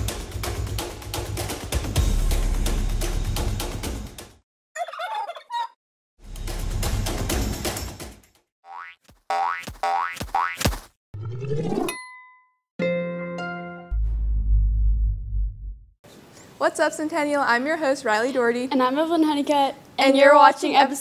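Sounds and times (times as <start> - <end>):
turkey gobble: 4.8 - 5.8.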